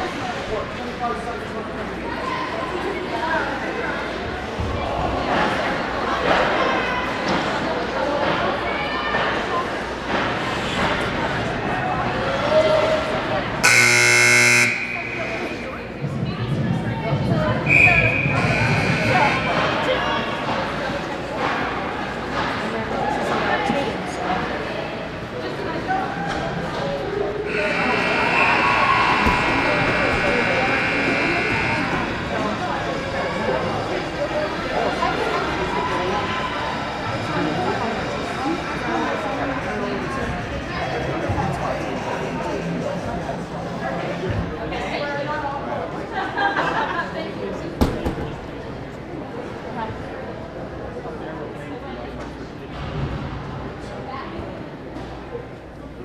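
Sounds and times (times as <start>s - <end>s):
spectators talking: 0.0s - 56.0s
electric arena buzzer: 13.6s - 15.9s, 18.3s - 19.6s, 27.5s - 32.6s.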